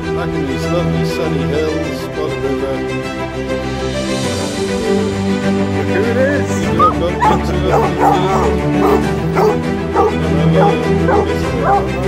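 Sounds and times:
background music: 0:00.0 - 0:12.0
dog whining and yipping: 0:06.8 - 0:11.9.

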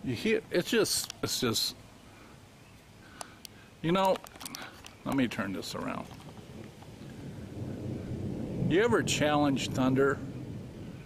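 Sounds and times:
distant thunder rumble: 0:05.0 - 0:11.0.

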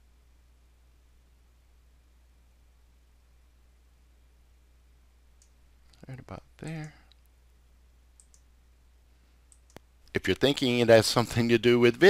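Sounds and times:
computer mouse clicks: 0:08.2 - 0:08.5, 0:09.5 - 0:09.9.

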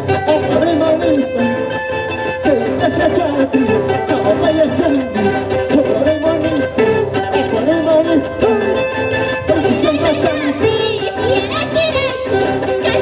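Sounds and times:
plucked strings: 0:00.0 - 0:13.0.

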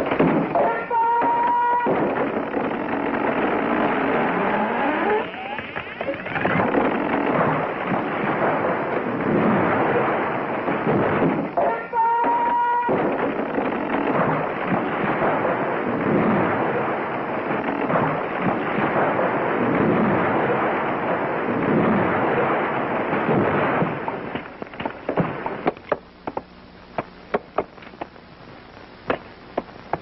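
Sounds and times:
trees crashing down: 0:00.0 - 0:28.2.

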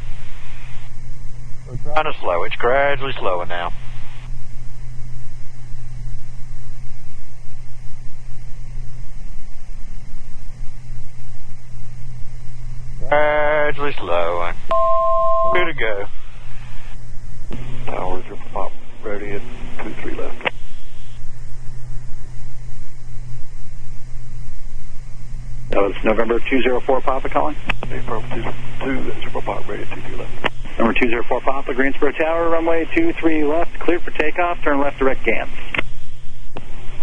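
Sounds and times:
man speaking: 0:01.7 - 0:03.8, 0:15.4 - 0:16.2, 0:25.7 - 0:35.6
aircraft engines droning: 0:17.5 - 0:36.8.

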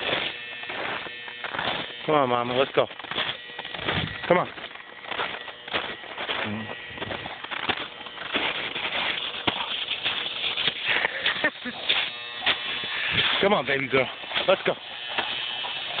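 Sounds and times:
footsteps crunching in snow: 0:00.0 - 0:16.0.

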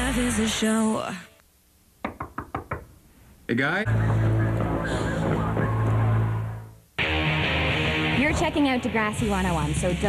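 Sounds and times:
knuckles knocking on door: 0:02.0 - 0:02.9.

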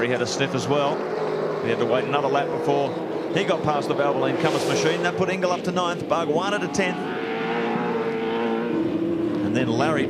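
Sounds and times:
racing car engine at high revs: 0:00.0 - 0:10.0.

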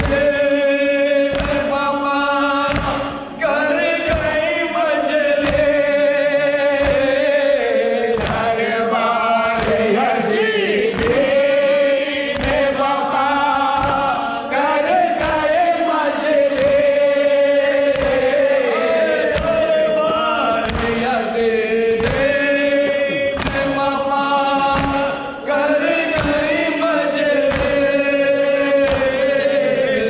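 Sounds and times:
hands slapping chests: 0:00.0 - 0:00.4, 0:01.2 - 0:01.8, 0:02.6 - 0:03.2, 0:04.0 - 0:08.7, 0:09.4 - 0:10.1, 0:10.7 - 0:11.6, 0:12.2 - 0:12.9, 0:13.6 - 0:15.6, 0:16.2 - 0:23.9, 0:24.6 - 0:29.6
lead reciter: 0:00.0 - 0:30.0
men chanting in unison: 0:00.0 - 0:30.0.

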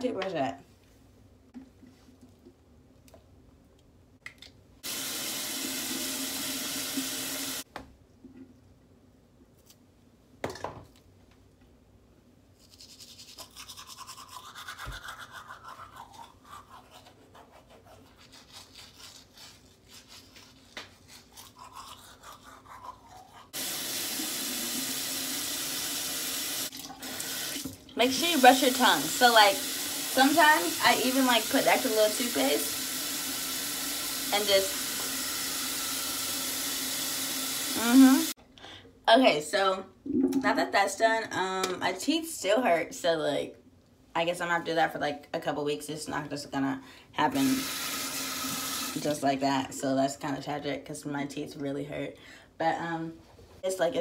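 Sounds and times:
toothbrush scrubbing teeth: 0:12.6 - 0:23.6.

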